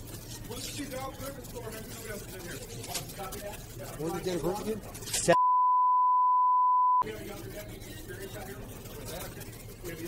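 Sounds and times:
censor bleep: 5.4s - 7.0s.

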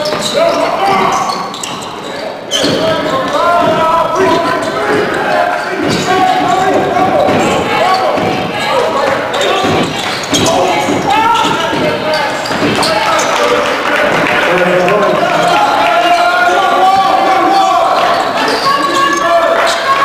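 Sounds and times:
players shouting: 0.0s - 20.0s
spectators' voices: 0.0s - 20.0s
basketball bouncing on hardwood: 3.6s - 5.2s, 5.8s - 7.6s, 8.2s - 13.0s.

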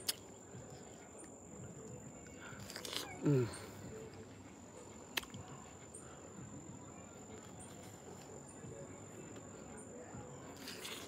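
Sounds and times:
crickets trilling: 0.0s - 11.0s.

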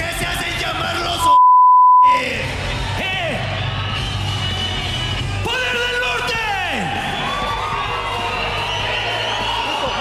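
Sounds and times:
censor bleep: 1.2s - 2.2s
background music: 2.0s - 10.0s
crowd noise: 2.0s - 10.0s.

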